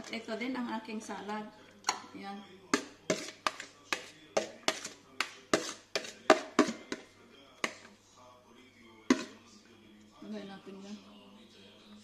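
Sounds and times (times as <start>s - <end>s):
kitchenware knocking against bowl: 2.7s - 7.9s, 9.1s - 9.4s.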